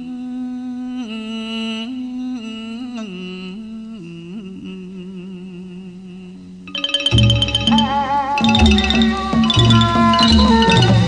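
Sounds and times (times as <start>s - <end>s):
man singing long notes: 0.0s - 6.5s, 7.2s - 11.0s.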